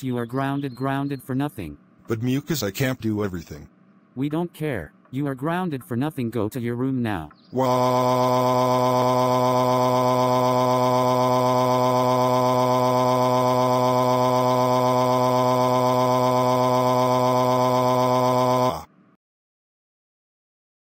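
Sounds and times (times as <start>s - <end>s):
robotic text-to-speech voice: 0.0s - 3.6s, 4.2s - 18.8s.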